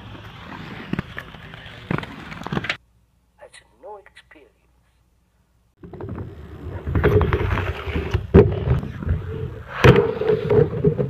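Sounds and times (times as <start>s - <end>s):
skate wheels rumbling on rough ground: 0.0s - 2.8s, 5.8s - 11.0s.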